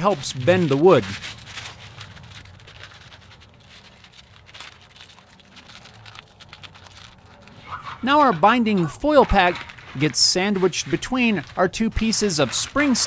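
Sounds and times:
foil pack rustling and scratching: 0:00.0 - 0:13.0.

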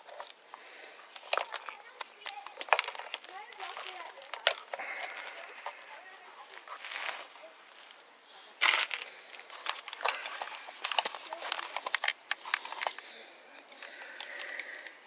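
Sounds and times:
camera handling rustling: 0:01.1 - 0:05.8, 0:08.6 - 0:15.0.

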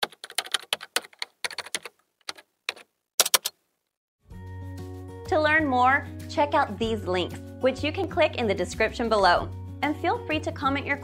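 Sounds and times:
computer keyboard typing: 0:00.0 - 0:03.6.

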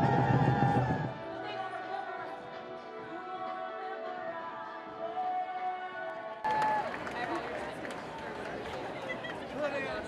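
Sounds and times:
background music: 0:00.0 - 0:07.5.

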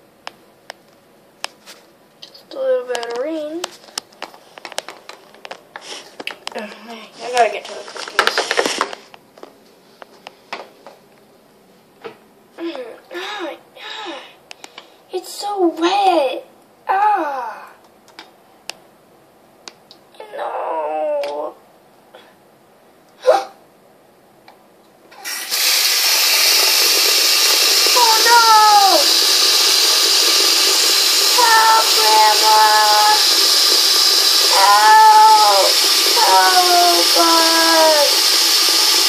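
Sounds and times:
high-pitched wordless voice: 0:02.2 - 0:03.7, 0:06.6 - 0:07.9, 0:12.6 - 0:14.3, 0:15.1 - 0:17.8, 0:20.1 - 0:21.6, 0:27.9 - 0:29.2, 0:31.3 - 0:33.3, 0:34.5 - 0:38.2
child wailing: 0:16.9 - 0:17.7, 0:20.2 - 0:21.6, 0:28.0 - 0:29.1, 0:31.3 - 0:33.2, 0:34.5 - 0:38.2.

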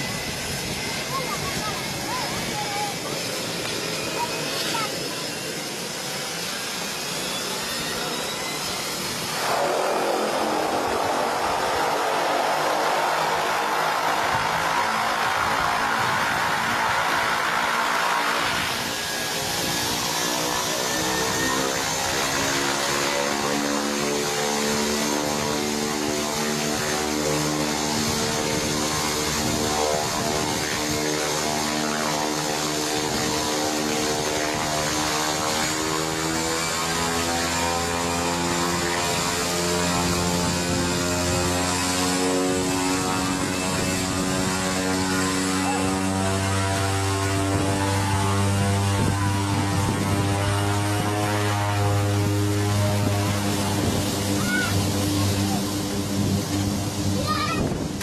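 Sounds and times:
thin high whine: 0:00.0 - 0:36.0
propeller aircraft engine running: 0:00.0 - 0:58.0.

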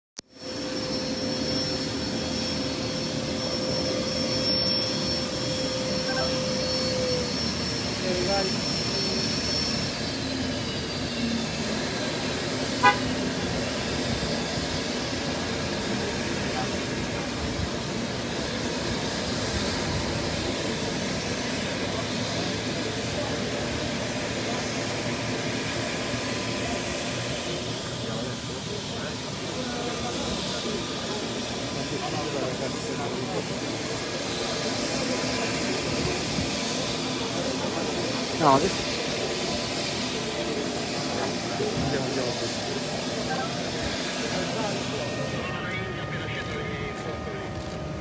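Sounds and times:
jet engines whining: 0:00.3 - 0:48.0
short sharp horn toot: 0:12.7 - 0:13.3.

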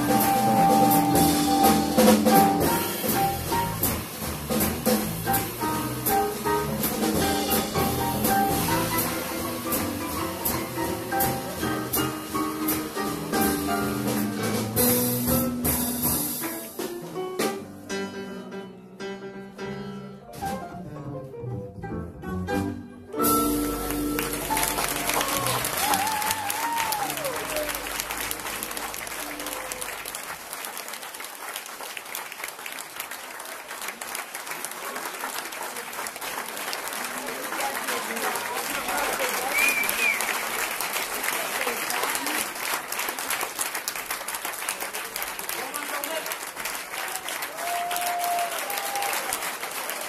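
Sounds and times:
audience applauding and cheering: 0:00.0 - 0:14.9, 0:23.2 - 0:50.0
shouts from crowd: 0:25.1 - 0:27.9, 0:47.0 - 0:49.4.

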